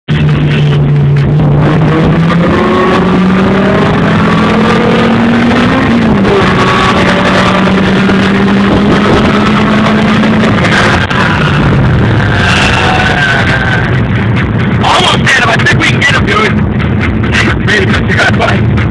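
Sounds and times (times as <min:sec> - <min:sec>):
car engine accelerating: 0:00.1 - 0:18.9
wind and road noise: 0:00.1 - 0:18.9.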